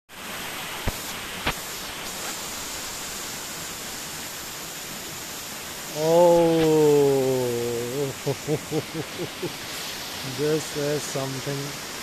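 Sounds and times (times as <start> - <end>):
water rushing over rock: 0.1 - 12.0.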